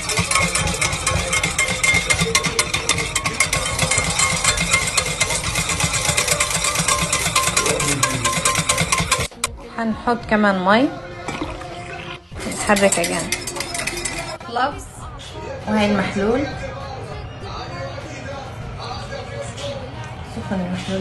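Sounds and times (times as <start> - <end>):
electric whisk motor whirring: 0.0 - 9.4
whisk rattling against pot: 0.0 - 9.5, 12.4 - 14.4.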